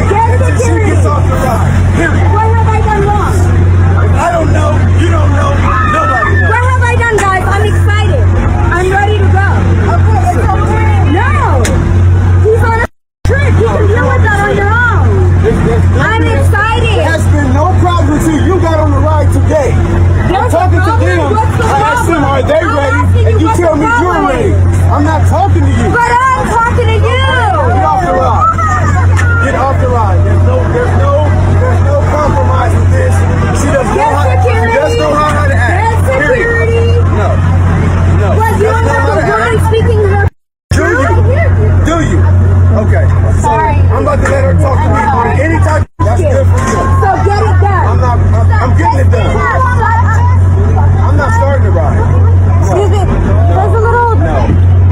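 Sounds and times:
low hum: 0.0s - 54.9s
people arguing and shouting: 0.0s - 54.9s
people talking over one another: 0.0s - 54.9s.

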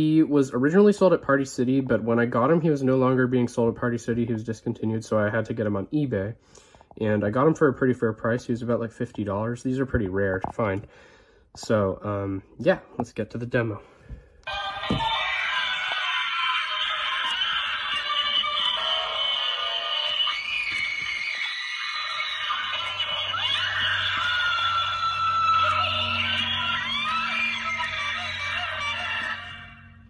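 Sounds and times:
tinny music from small speaker: 14.4s - 30.0s.

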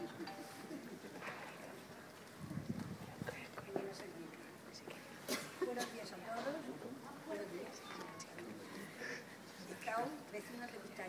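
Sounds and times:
crowd murmur: 0.0s - 9.9s.

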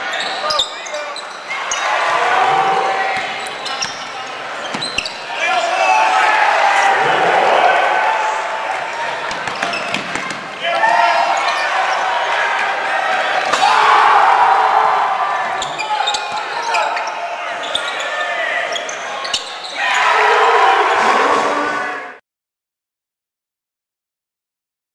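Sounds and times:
crowd voices in a gymnasium: 0.0s - 22.2s.

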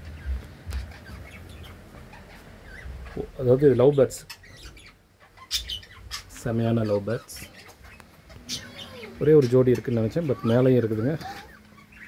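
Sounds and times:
budgerigars chirping: 0.0s - 12.0s.

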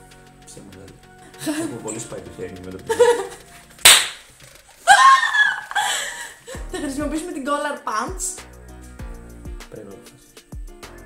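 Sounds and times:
hand clap: 3.9s - 4.3s
woman laughing loudly: 4.8s - 6.9s.

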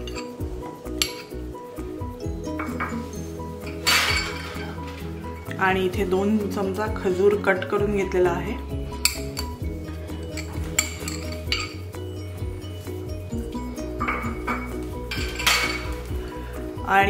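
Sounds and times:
glass bowls clinking: 0.0s - 1.6s, 2.4s - 5.6s, 8.9s - 16.2s
soft background music: 0.0s - 17.0s.

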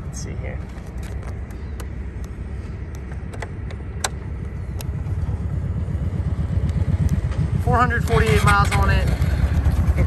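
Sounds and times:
low rumble: 0.0s - 10.0s
ignition clicks: 0.9s - 5.0s.

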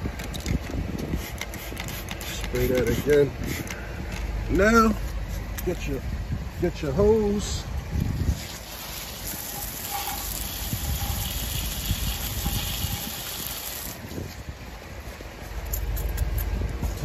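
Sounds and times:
hose spraying water: 8.2s - 14.1s.

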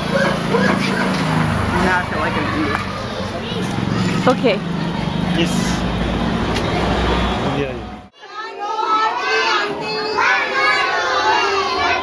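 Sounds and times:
road traffic engine rumble: 0.0s - 8.1s.

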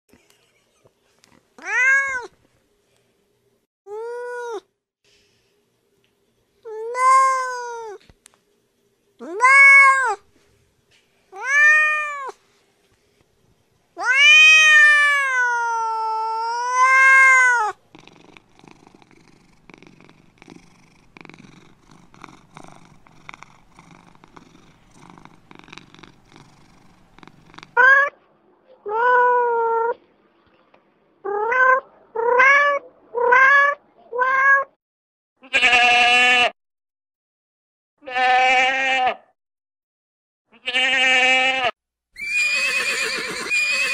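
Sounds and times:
cat meowing: 1.6s - 2.3s, 9.2s - 10.2s, 11.4s - 12.4s, 14.0s - 17.8s, 27.6s - 28.2s, 28.8s - 30.0s, 31.2s - 34.8s
goat bleating: 35.4s - 36.5s, 38.0s - 39.2s, 40.6s - 41.7s.

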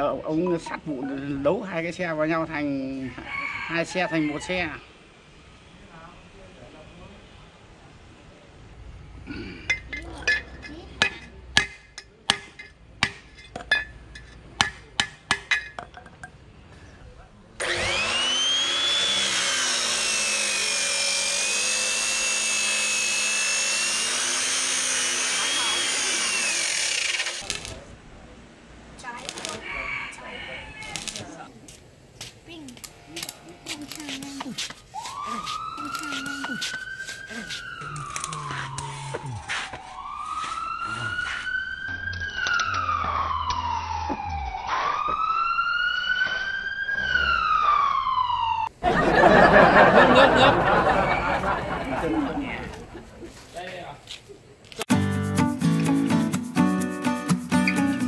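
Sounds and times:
cut-off saw cutting steel pipe: 17.6s - 27.5s.

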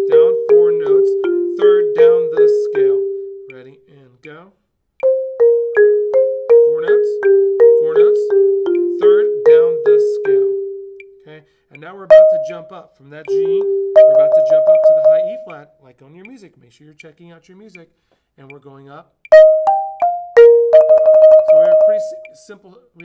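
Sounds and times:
marimba descending notes: 0.0s - 3.6s, 5.0s - 11.2s, 12.1s - 15.6s, 19.3s - 22.4s.

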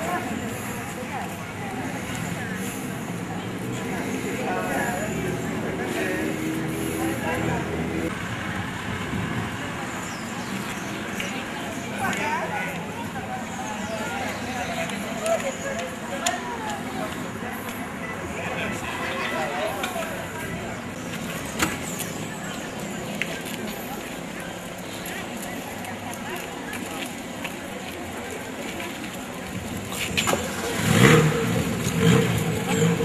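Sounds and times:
crowd murmuring: 0.0s - 33.0s
people talking and greeting: 0.0s - 33.0s.

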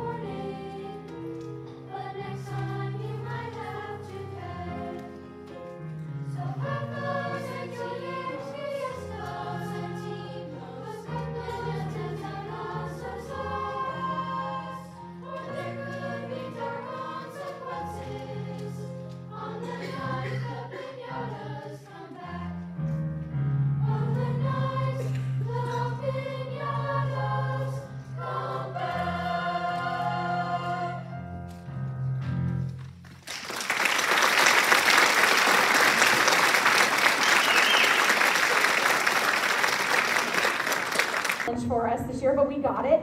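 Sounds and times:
children's choir singing: 0.0s - 23.0s, 23.7s - 31.2s, 34.3s - 41.5s.

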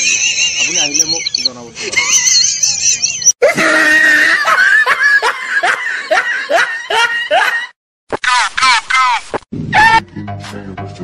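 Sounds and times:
person laughing: 1.8s - 10.0s.

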